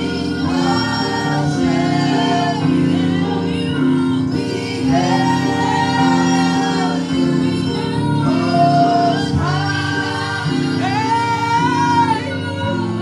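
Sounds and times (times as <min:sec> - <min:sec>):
held backing chords: 0:00.0 - 0:13.0
woman singing into a microphone: 0:00.0 - 0:13.0.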